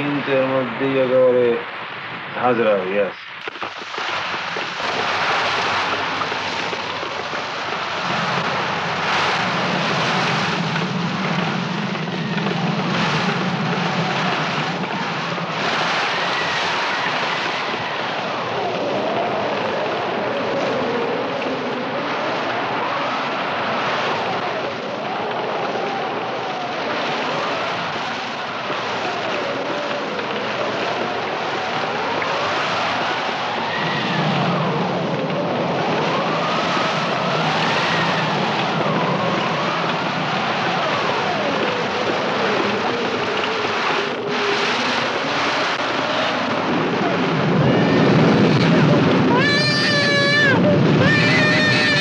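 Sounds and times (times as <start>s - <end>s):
storm wind howling: 0.0s - 52.0s.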